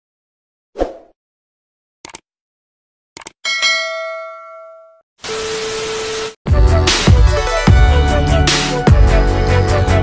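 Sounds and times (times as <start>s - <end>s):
bell ding: 3.4s - 5.0s.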